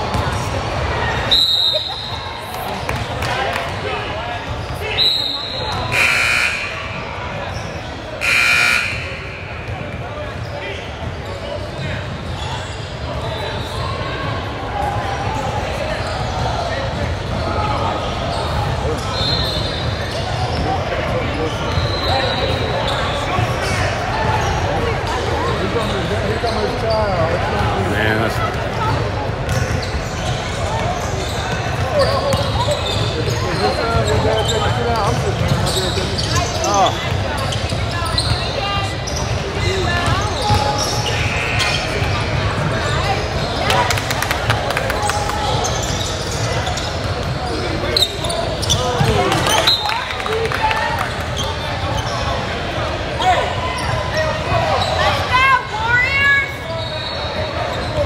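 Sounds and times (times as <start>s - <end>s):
many voices echoing in hall: 0.0s - 58.0s
sneaker squeaks: 4.4s - 14.2s, 15.3s - 44.1s, 45.0s - 50.2s, 50.9s - 52.6s, 53.2s - 58.0s
basketballs bouncing: 28.7s - 40.9s.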